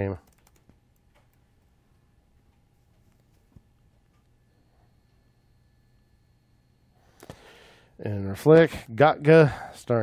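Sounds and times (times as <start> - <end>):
keyboard keystrokes: 0.2 - 1.4.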